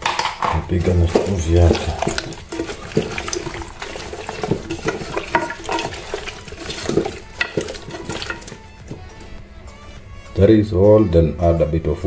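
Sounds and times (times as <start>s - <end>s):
knocks against metal pot: 0.0s - 9.0s
wet squelching of raw meat: 0.6s - 9.2s.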